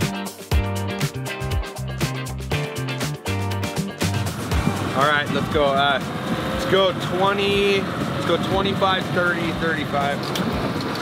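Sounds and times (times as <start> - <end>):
background music: 0.0 - 11.0
fishing boat noise: 4.3 - 11.0
man's voice: 4.8 - 10.2.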